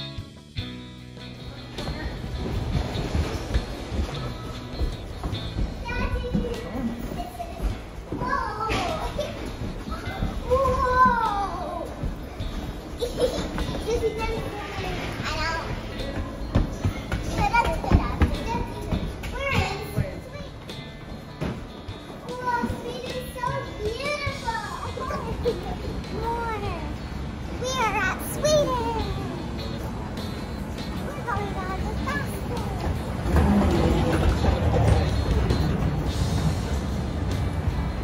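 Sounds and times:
voices: 0:01.4 - 0:38.0.

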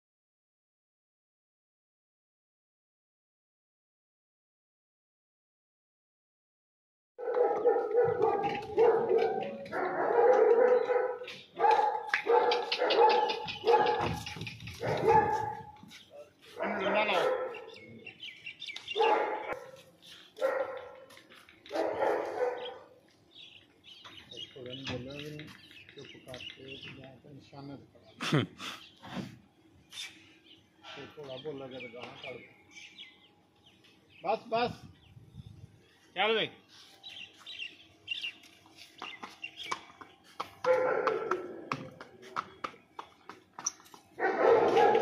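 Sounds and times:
animal barking: 0:07.2 - 0:15.8, 0:16.5 - 0:17.8, 0:18.9 - 0:23.0, 0:40.6 - 0:42.1, 0:44.2 - 0:45.0
horse hooves on brick paving: 0:07.2 - 0:17.5, 0:38.4 - 0:45.0
small birds chirping: 0:07.8 - 0:29.2, 0:29.8 - 0:45.0.

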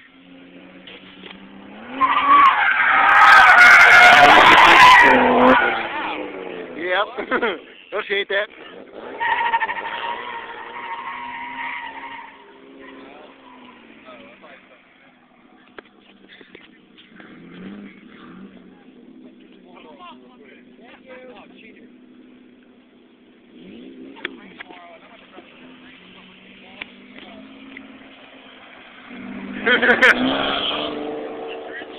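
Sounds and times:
car engine: 0:00.0 - 0:31.9
car tyres squealing: 0:00.2 - 0:06.8, 0:07.6 - 0:31.9.

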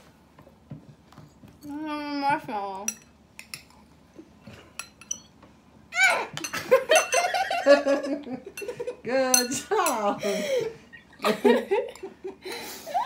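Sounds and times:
spoons clinking on ceramic bowls: 0:02.9 - 0:03.8, 0:04.7 - 0:05.4, 0:06.4 - 0:07.5, 0:08.6 - 0:10.1
girls giggling and laughing: 0:06.6 - 0:09.1, 0:10.1 - 0:13.0.

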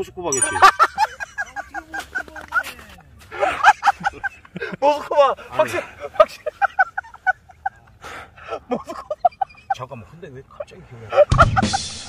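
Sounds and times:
man laughing: 0:11.0 - 0:11.8.

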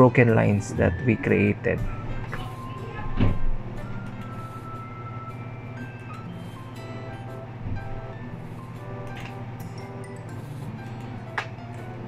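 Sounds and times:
soft background music: 0:00.0 - 0:12.0
steady low hum: 0:00.0 - 0:12.0.

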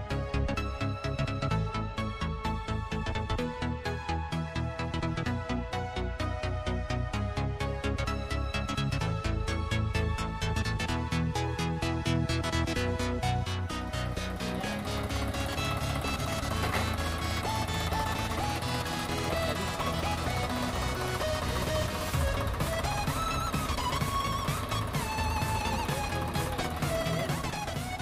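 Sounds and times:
background music with beat: 0:00.0 - 0:28.0.

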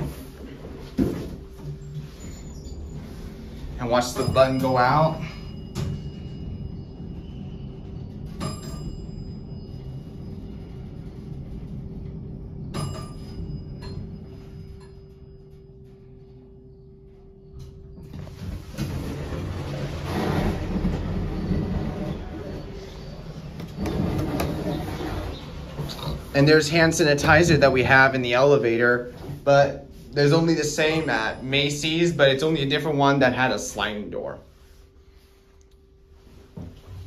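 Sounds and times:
elevator door opening rush: 0:00.0 - 0:34.5
elevator car humming: 0:00.0 - 0:37.0.

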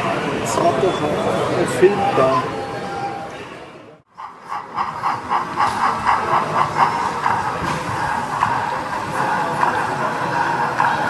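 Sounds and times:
model steam locomotive running: 0:04.1 - 0:11.0.

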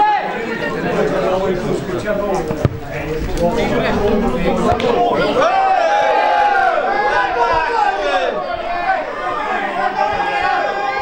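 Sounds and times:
babble of spectators' voices: 0:00.0 - 0:11.0.

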